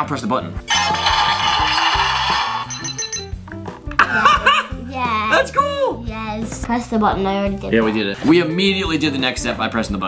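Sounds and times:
toy robot hissing crackling burst: 0:00.7 - 0:02.8.

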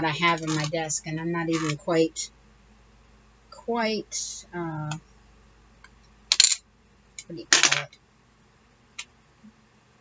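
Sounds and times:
plastic pieces clattering on desk: 0:00.3 - 0:00.7, 0:01.5 - 0:01.8, 0:06.3 - 0:06.6.

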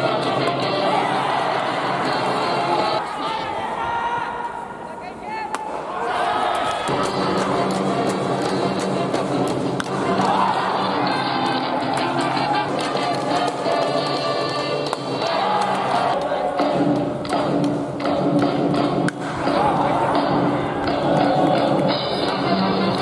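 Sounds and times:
crowd chanting: 0:00.0 - 0:05.0, 0:05.7 - 0:17.2, 0:19.2 - 0:23.0.

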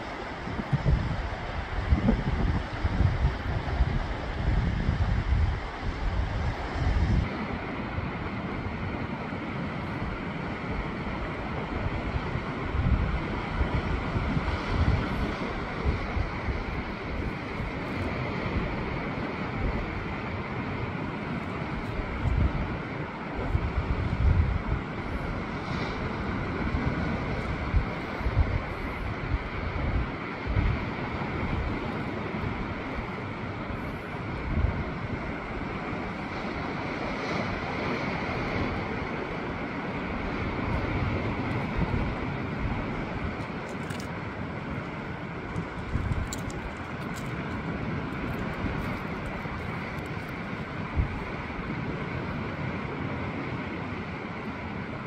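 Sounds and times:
sea surf rushing: 0:00.0 - 0:55.0
wind buffeting microphone: 0:00.0 - 0:55.0.

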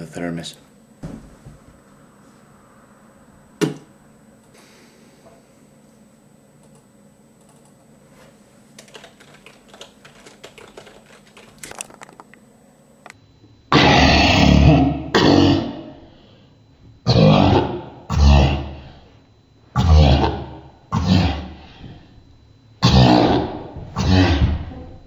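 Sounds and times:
man grunting: 0:17.1 - 0:18.8, 0:19.8 - 0:21.6, 0:22.8 - 0:24.7.

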